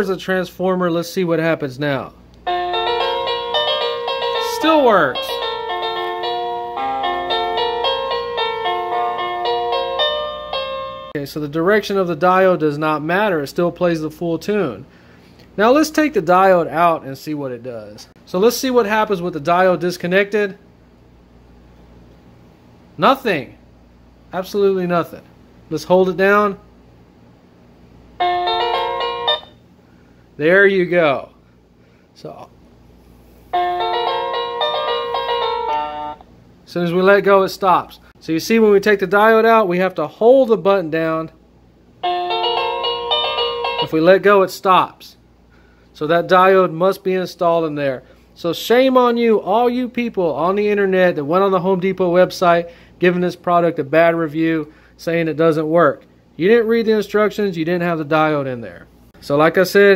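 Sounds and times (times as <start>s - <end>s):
electronic doorbell chime melody: 2.4s - 11.2s, 28.2s - 29.6s, 33.5s - 36.2s, 42.0s - 44.0s.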